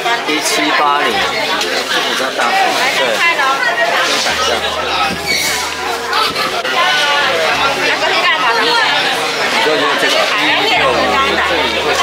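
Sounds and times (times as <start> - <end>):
people talking at once: 0.0 - 12.0
low steady hum: 4.1 - 9.2, 10.6 - 12.0.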